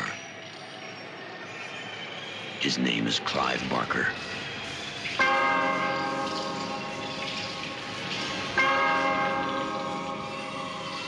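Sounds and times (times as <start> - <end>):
bell tolling: 4.2 - 11.0.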